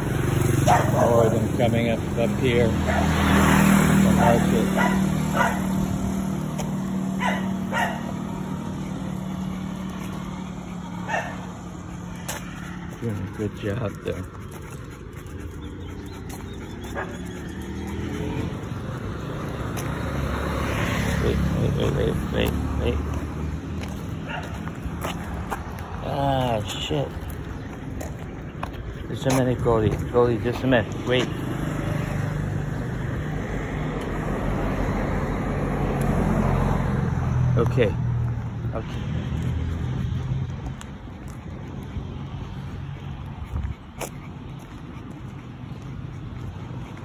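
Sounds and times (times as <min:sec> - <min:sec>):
muffled road traffic rumble: 0:00.0 - 0:47.0
vehicle engine humming: 0:00.0 - 0:47.0
dog bark: 0:00.6 - 0:01.4, 0:02.8 - 0:03.2, 0:04.1 - 0:05.8, 0:07.2 - 0:08.3, 0:11.0 - 0:11.5, 0:24.2 - 0:24.6.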